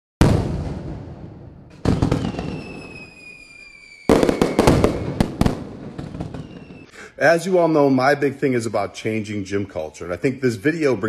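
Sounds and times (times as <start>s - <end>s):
loud bangs: 0.2s - 3.2s, 4.1s - 6.9s
falling whistle: 2.2s - 5.3s, 6.3s - 6.9s
sharp cracks: 4.1s - 6.9s.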